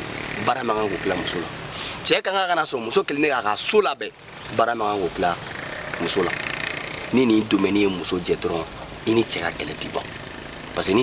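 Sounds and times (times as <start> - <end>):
field insects chirring: 0.0 - 11.0
man speaking: 7.1 - 10.1, 10.8 - 11.0.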